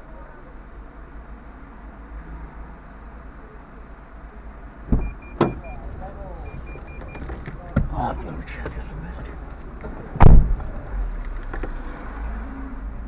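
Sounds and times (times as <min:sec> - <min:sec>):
low rumble inside car: 0:02.6 - 0:13.0.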